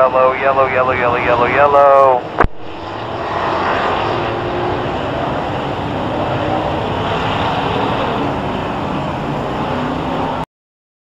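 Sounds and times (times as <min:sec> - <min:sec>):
drone of many car engines: 0:00.0 - 0:10.5.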